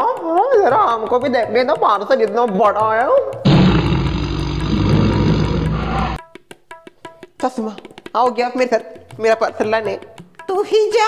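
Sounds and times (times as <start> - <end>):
roar-like music sting: 3.5 - 6.2.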